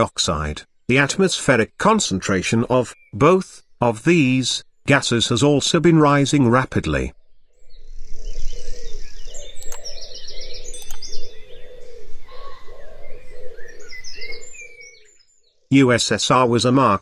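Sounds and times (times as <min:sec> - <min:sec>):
birds chirping: 0:00.0 - 0:17.0
sharp clicks: 0:09.6 - 0:09.9, 0:10.8 - 0:11.1
brief ringing tone: 0:10.8 - 0:11.4.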